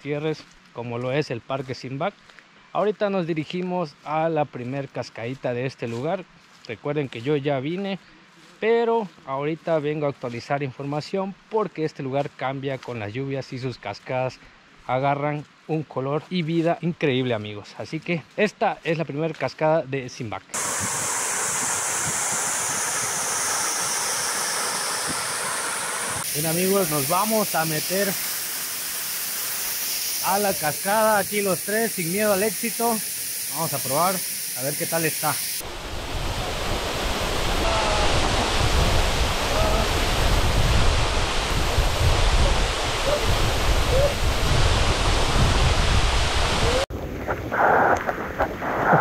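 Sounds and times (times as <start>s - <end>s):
waterfall splashing into pool: 20.6s - 35.8s, 36.4s - 49.0s.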